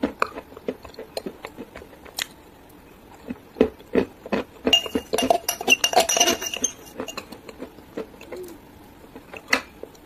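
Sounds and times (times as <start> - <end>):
clinks against a drinking glass: 4.7 - 7.3.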